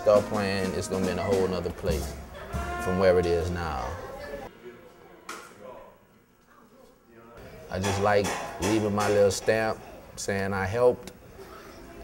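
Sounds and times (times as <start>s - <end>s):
trumpet and drum kit playing: 0.0s - 4.0s.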